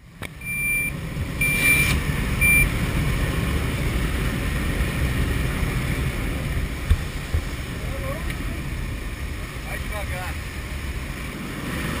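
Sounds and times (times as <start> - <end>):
plane engine and airflow rumble: 0.0 - 12.0
high electronic beeps: 0.4 - 2.7.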